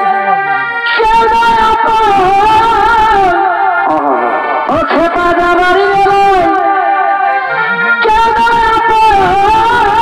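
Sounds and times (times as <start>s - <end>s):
shrill reed pipe melody: 0.0s - 10.0s.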